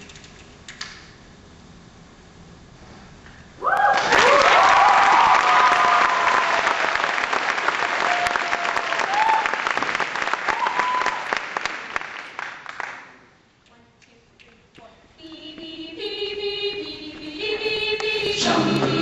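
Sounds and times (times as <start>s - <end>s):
high-pitched cheering and whoops: 3.6s - 6.8s, 7.9s - 9.7s, 10.5s - 11.4s
audience applause: 3.7s - 13.0s.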